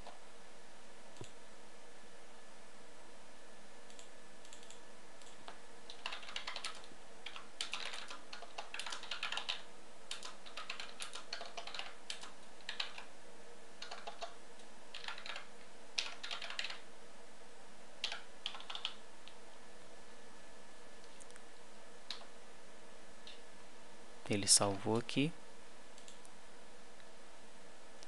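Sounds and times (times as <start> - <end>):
computer keyboard typing: 3.9 - 13.1, 13.8 - 16.9, 18.0 - 19.0, 22.1 - 22.3.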